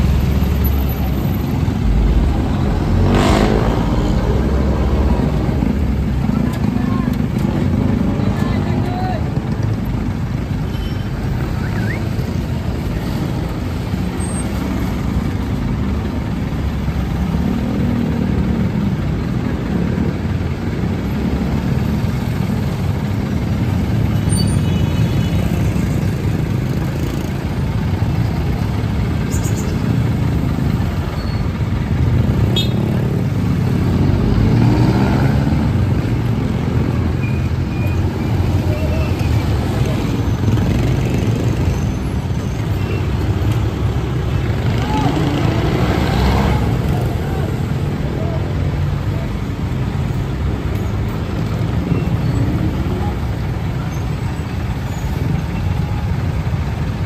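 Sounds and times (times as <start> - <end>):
engine rumbling close by: 0.0 - 57.0
street traffic: 0.0 - 57.0.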